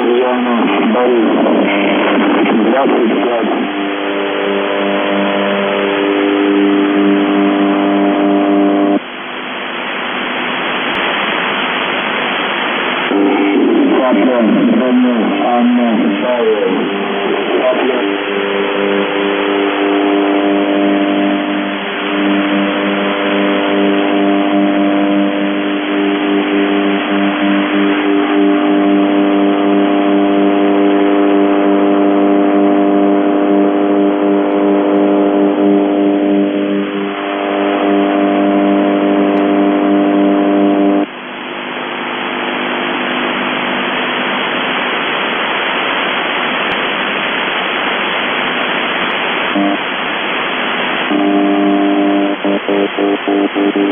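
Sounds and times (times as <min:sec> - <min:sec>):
low radio buzz: 0:00.0 - 0:53.9
static hiss: 0:00.0 - 0:53.9.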